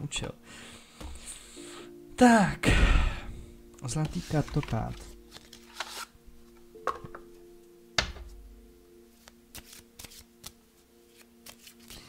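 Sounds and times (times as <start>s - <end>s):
cards being shuffled: 4.0s - 6.2s, 9.2s - 12.0s.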